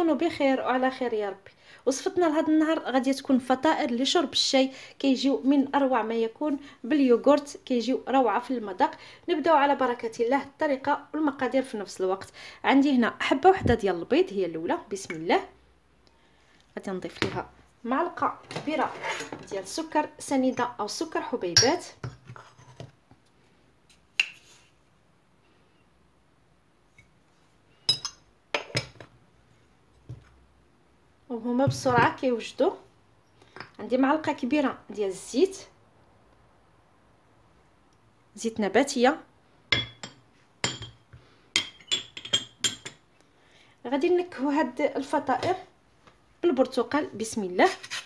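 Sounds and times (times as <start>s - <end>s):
metal spoon clinking against glass: 27.9s - 28.2s, 41.6s - 43.0s
metal spoon clinking ceramic jar: 27.9s - 28.9s, 39.8s - 41.0s, 41.6s - 43.0s.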